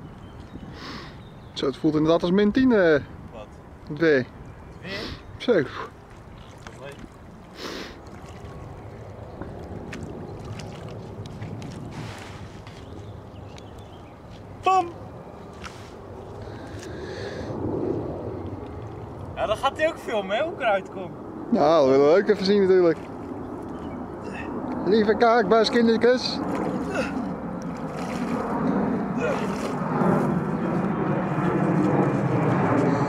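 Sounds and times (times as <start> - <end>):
steady low rumbling: 0.0 - 33.0
wind buffeting microphone: 0.0 - 33.0.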